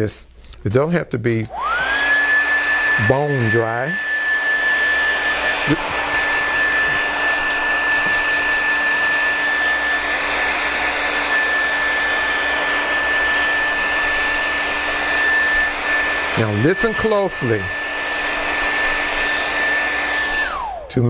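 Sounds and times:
hair dryer running: 1.4s - 21.0s.

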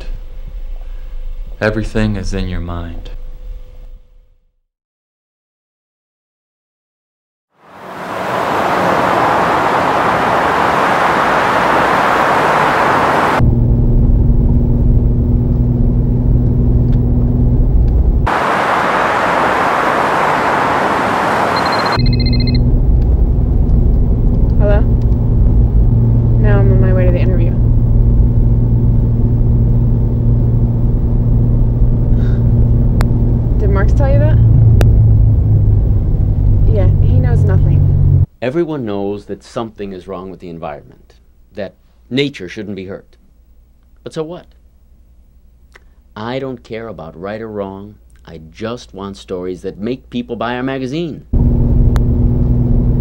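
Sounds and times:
freeway traffic noise: 7.6s - 13.4s, 17.8s - 38.3s
car engine and road rumble: 7.6s - 38.3s, 51.4s - 53.0s
short beep: 21.5s - 22.7s.

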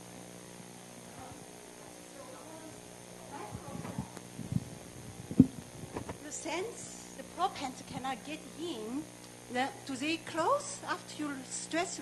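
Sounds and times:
faint murmuring voices: 0.0s - 6.1s
dull low thumps: 3.9s - 6.1s.

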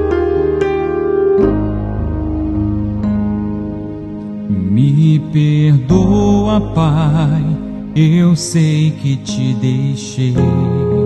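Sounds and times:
sustained keyboard chords: 0.0s - 11.0s
man singing: 4.5s - 11.0s.

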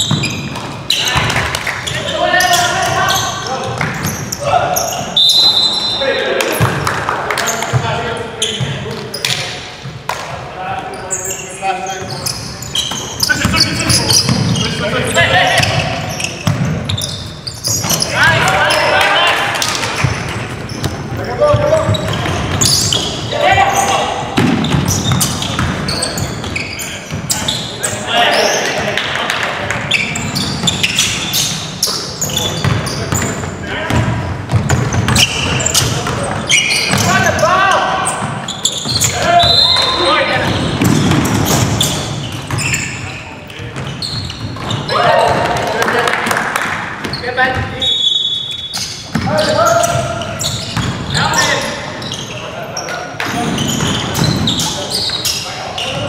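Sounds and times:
basketball bouncing on wooden floor: 0.0s - 1.6s, 15.6s - 17.1s, 19.6s - 23.1s, 24.4s - 27.2s, 32.5s - 37.1s, 40.4s - 42.8s, 43.7s - 45.6s, 49.1s - 51.5s
players calling out: 0.0s - 9.8s, 10.4s - 56.0s
basketball bouncing on hardwood: 33.9s - 37.1s, 40.4s - 41.8s
loud shout: 44.9s - 46.4s.

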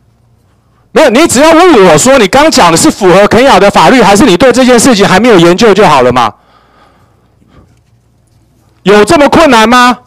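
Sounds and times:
person speaking into a microphone: 0.9s - 6.4s, 8.8s - 10.0s
faint microphone hum: 5.2s - 10.0s.

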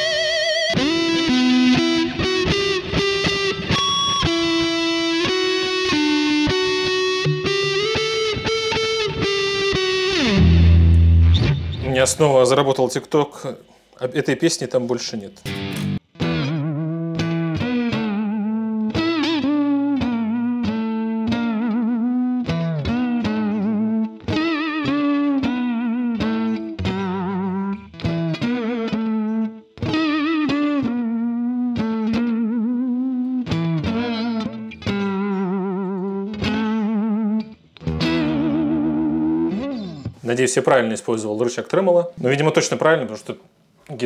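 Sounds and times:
electric guitar with wavering pitch: 0.0s - 11.8s, 15.5s - 40.2s.

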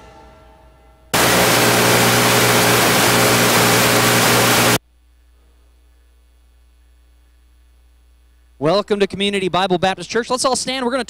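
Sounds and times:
mains hum: 0.0s - 11.0s
static hiss: 1.2s - 4.8s.

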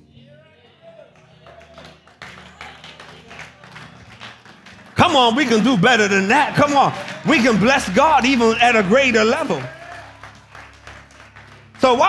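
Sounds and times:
soft background music: 0.0s - 12.0s
congregation clapping: 1.0s - 12.0s.

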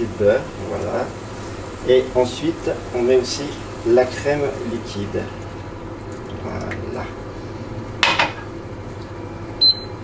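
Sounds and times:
kitchenware clink: 8.0s - 8.4s.

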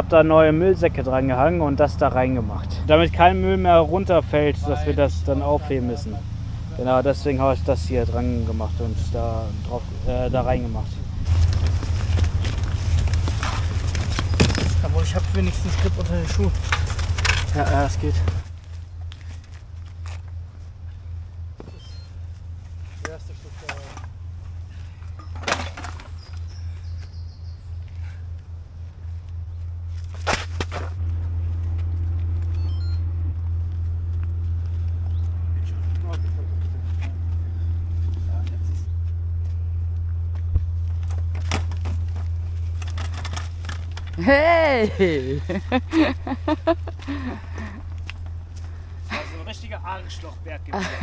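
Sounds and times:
low outdoor rumble: 0.0s - 51.0s
footsteps on muddy slope: 11.2s - 20.4s.

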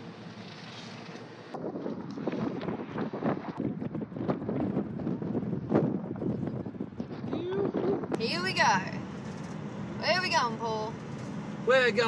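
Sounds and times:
wind buffeting microphone: 1.5s - 9.0s.

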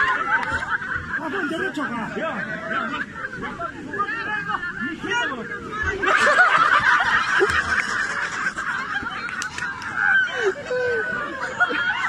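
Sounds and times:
crowd laughing and crying out: 0.0s - 12.0s.

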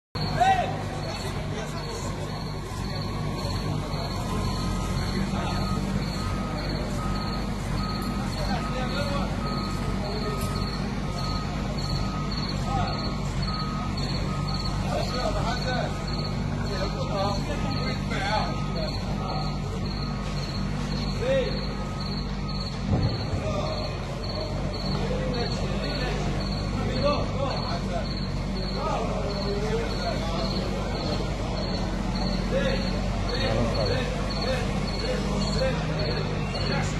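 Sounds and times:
forklift backup alarm beeping: 0.2s - 36.9s
forklift engine running: 0.2s - 36.9s
crickets chirping: 1.0s - 36.9s.

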